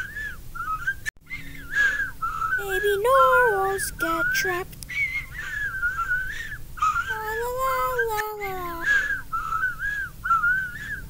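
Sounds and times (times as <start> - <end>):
child whimpering and crying: 6.9 - 9.0.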